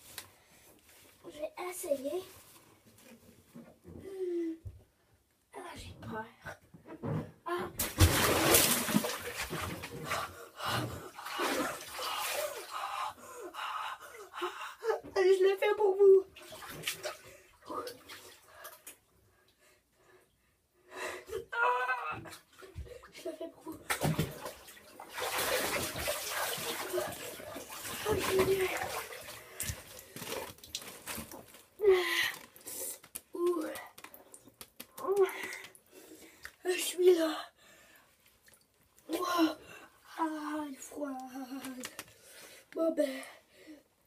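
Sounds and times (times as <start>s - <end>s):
water moving in a tub: 7.8s - 13.2s, 15.7s - 19.1s, 21.9s - 36.6s.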